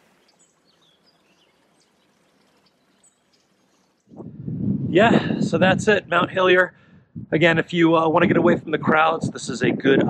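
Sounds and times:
faint bird chirps: 0.0s - 4.2s
low rumbling on microphone: 4.1s - 10.0s.

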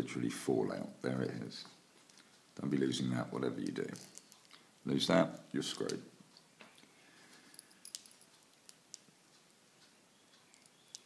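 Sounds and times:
small metal parts clicking: 3.6s - 4.7s, 7.3s - 9.4s, 10.3s - 11.0s.

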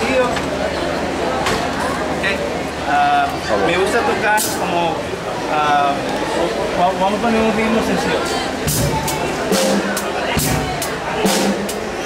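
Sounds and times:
drum kit steady beat: 8.5s - 12.0s.

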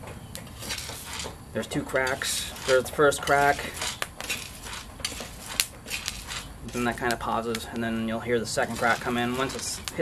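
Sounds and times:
coffee beans popping: 0.4s - 8.0s, 8.6s - 10.0s
metal utensil scraping pan: 0.5s - 7.2s, 8.5s - 10.0s
coffee beans rattling in pan: 0.5s - 7.7s, 8.4s - 10.0s.

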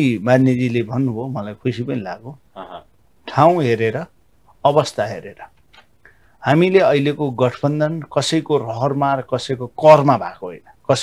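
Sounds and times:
man speaking: 0.0s - 5.6s, 6.4s - 11.0s.

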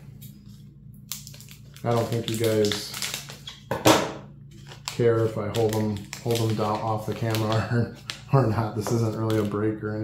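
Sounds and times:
foil wrapper crinkling: 0.1s - 3.8s, 4.5s - 10.0s
wrapper rustling: 0.2s - 3.7s, 4.5s - 10.0s.

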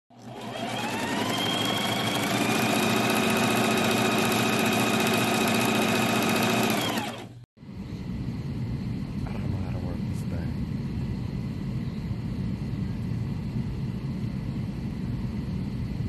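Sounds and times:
electric sewing machine stitching: 0.1s - 7.4s.

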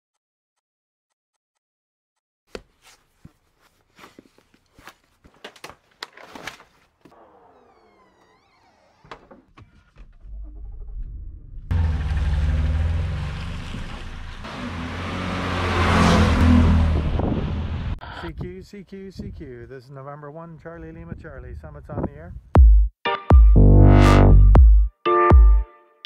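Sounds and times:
boot laces pulled through eyelets: 2.5s - 7.2s
car engine and tyre noise: 7.0s - 18.0s.

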